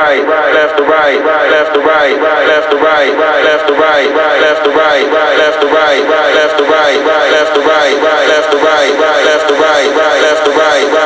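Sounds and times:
looped male vocal sample: 0:00.0 - 0:11.0.

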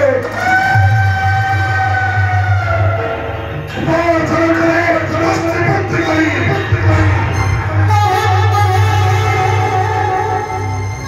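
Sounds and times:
low rumbling beat: 0:00.0 - 0:11.0
long held high note: 0:06.5 - 0:11.0.

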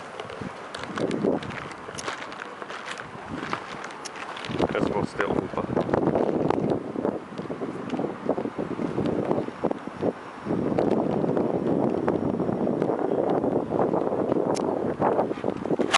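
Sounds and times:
wind buffeting microphone: 0:00.0 - 0:15.9.

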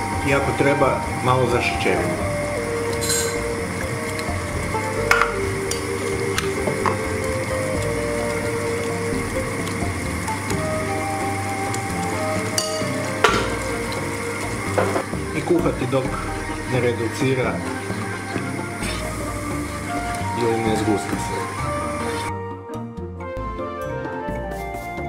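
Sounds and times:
tomato sauce simmering with sizzle: 0:00.0 - 0:22.3
soft background music: 0:00.0 - 0:25.0.

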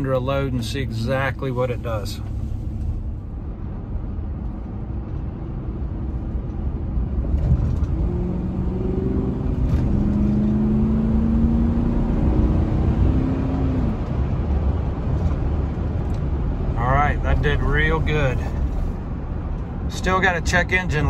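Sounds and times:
engine accelerating hard: 0:07.0 - 0:15.3.

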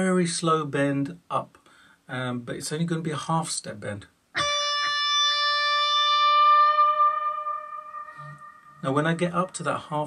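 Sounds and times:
electric guitar note bending: 0:04.4 - 0:09.1.

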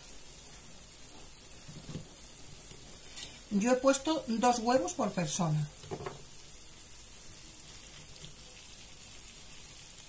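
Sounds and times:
frying pan sizzling: 0:00.0 - 0:10.0.

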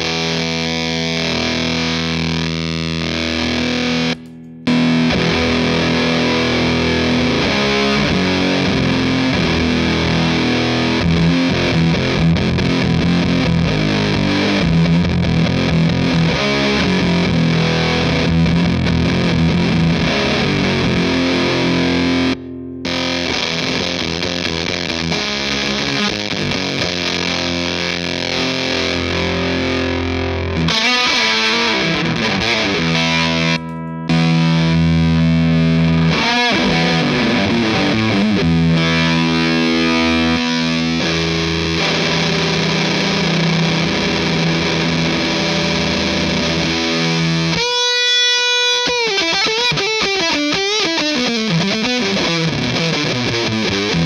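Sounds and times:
fuzzed electric guitar chords: 0:00.0 - 0:54.0.

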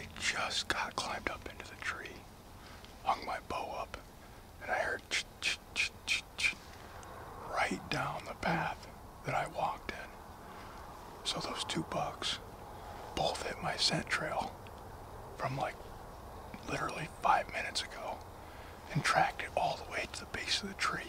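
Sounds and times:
man whispering: 0:00.0 - 0:14.6, 0:15.4 - 0:21.0.

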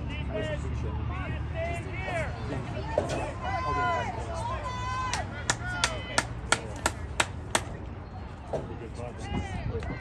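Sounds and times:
faint voices calling out: 0:00.0 - 0:10.0
rhythmic hand clapping: 0:05.1 - 0:07.7.

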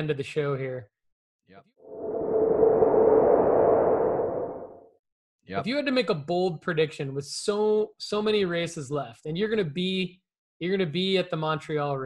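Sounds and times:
low hum: 0:01.9 - 0:04.9
transition whoosh: 0:01.9 - 0:04.9.

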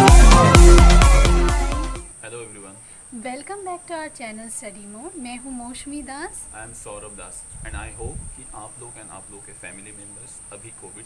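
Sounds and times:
insects droning: 0:02.0 - 0:11.0
woman speaking: 0:03.1 - 0:06.5.

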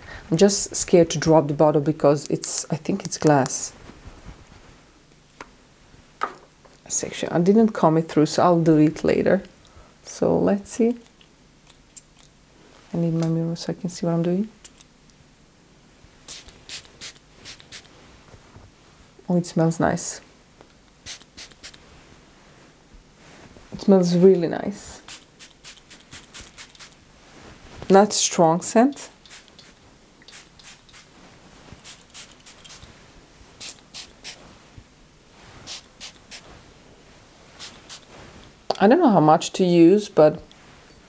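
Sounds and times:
spray bottle hissing: 0:16.3 - 0:17.9, 0:21.0 - 0:21.8, 0:25.1 - 0:27.0, 0:29.2 - 0:31.1, 0:31.8 - 0:32.9, 0:33.6 - 0:34.4, 0:35.6 - 0:36.5, 0:37.6 - 0:38.1.

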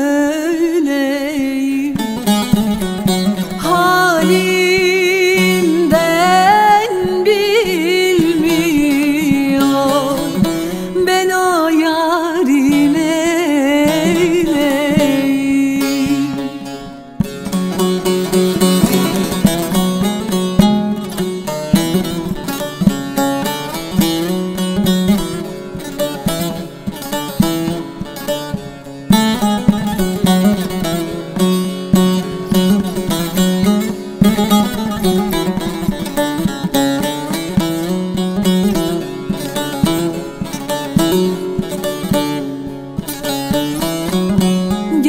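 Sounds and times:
plucked string instruments melody: 0:00.0 - 0:45.0.

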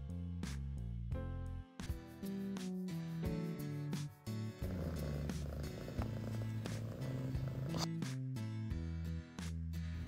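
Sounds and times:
background music: 0:00.0 - 0:10.0
cat purring: 0:04.5 - 0:07.9.

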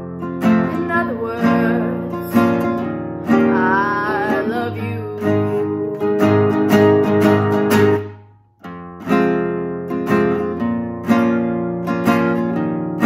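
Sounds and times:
acoustic guitar strumming chords: 0:00.0 - 0:13.0.

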